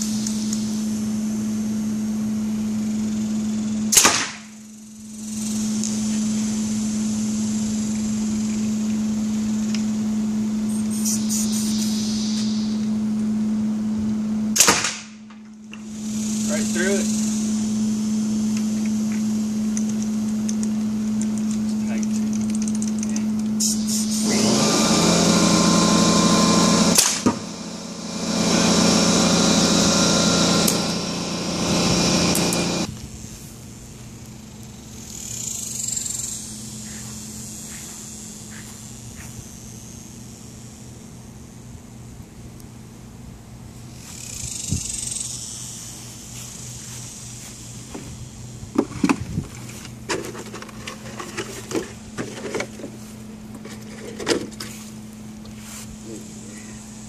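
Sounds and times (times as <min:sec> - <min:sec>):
air compressor humming: 0:00.0 - 0:57.0
marble gun firing crack: 0:03.9 - 0:04.5, 0:14.6 - 0:15.4, 0:27.0 - 0:27.4.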